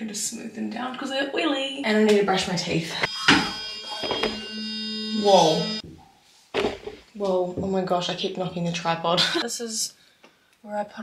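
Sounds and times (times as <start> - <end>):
electric toothbrush buzzing: 2.3 - 5.8.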